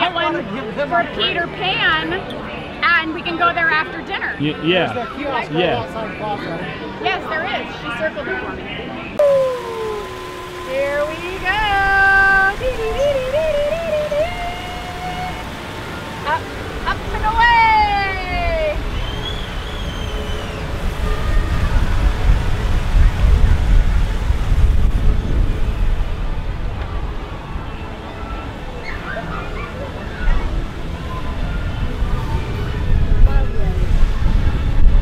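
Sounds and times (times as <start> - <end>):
person singing wavering notes: 9.2 - 16.6
falling vocal glide: 9.2 - 18.9
wind buffeting microphone: 16.8 - 27.9, 29.9 - 35.0.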